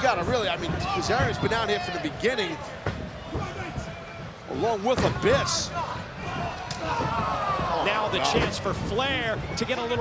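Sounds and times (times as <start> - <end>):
arena noise: 0.0 - 10.0.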